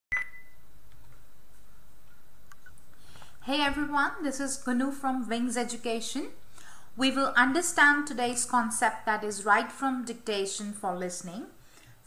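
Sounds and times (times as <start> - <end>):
short high beep: 0.1 - 0.6
faint room noise: 0.1 - 12.0.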